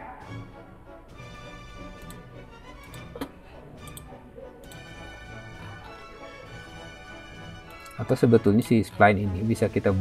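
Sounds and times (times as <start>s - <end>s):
background music with sustained tones: 0.0s - 10.0s
computer mouse clicks: 2.0s - 2.2s.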